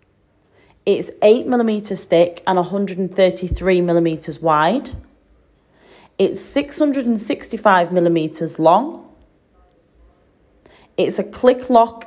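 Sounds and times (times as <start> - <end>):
faint breath: 0.4 - 0.8, 5.6 - 6.2, 10.6 - 11.0
woman speaking: 0.8 - 5.2, 6.2 - 9.2, 11.0 - 12.0.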